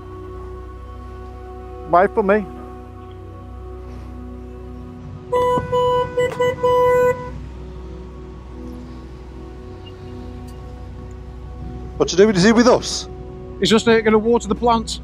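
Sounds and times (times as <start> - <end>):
vehicle horn blasts: 5.3 - 7.4.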